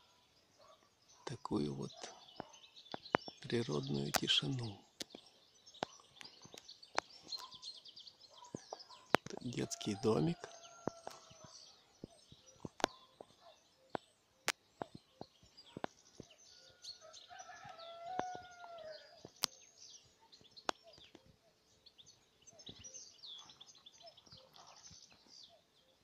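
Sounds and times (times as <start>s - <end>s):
small birds chirping: 0.0s - 26.0s
sharp clicks and snaps: 2.4s - 5.2s, 5.8s - 7.6s, 8.5s - 9.6s, 12.6s - 16.3s, 19.2s - 19.6s
rooster crowing: 9.6s - 11.4s, 16.6s - 19.1s.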